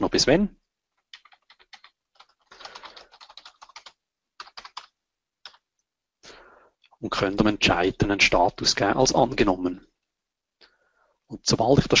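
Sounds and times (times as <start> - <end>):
computer keyboard typing: 1.0 - 5.6.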